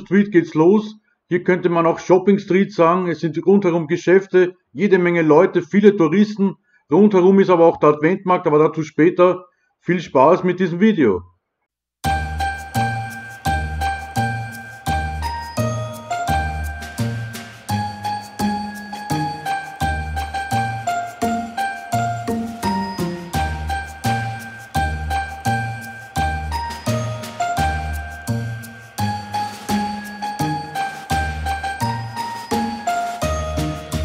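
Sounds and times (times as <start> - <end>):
bell-like chimes tune: 12.0 - 34.0
steady music beat: 12.0 - 34.0.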